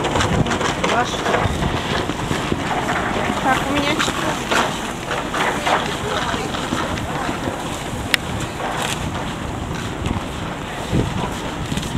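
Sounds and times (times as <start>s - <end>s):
busy train platform noise: 0.0s - 11.9s
wind buffeting microphone: 0.0s - 11.9s.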